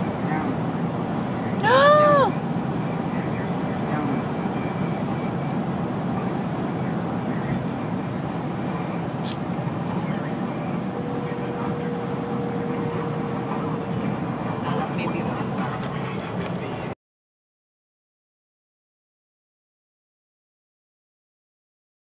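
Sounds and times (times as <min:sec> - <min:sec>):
car cabin road noise: 0:00.0 - 0:17.0.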